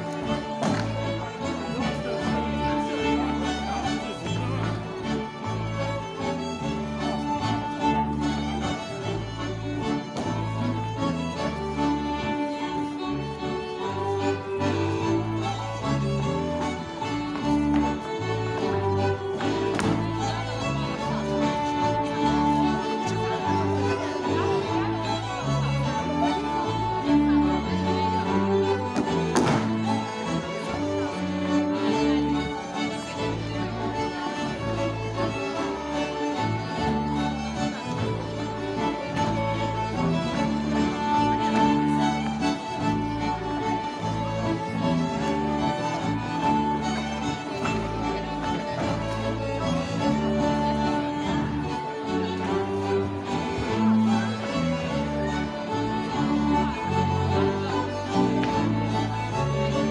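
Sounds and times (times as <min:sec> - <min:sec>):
folk dance band with fiddles: 0:00.0 - 0:59.9.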